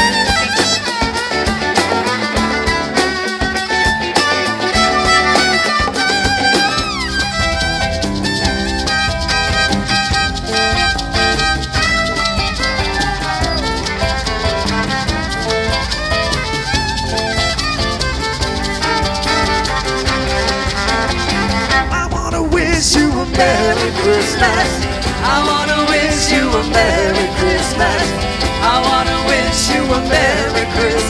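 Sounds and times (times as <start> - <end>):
drum kit beat: 0.0 - 31.0
fiddle melody: 0.0 - 31.0.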